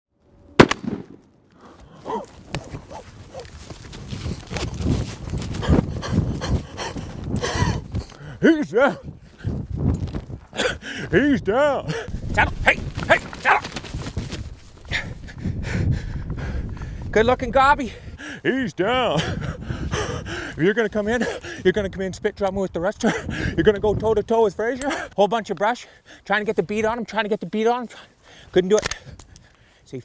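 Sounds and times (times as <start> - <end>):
shotgun blast: 0.6 - 1.3
rustling: 1.6 - 6.3, 12.1 - 14.9
turkey wings beating on grass: 12.4 - 14.9.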